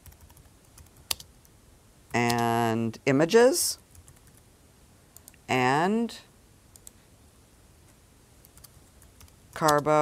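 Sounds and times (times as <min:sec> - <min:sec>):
computer mouse clicks: 0:06.7 - 0:07.0.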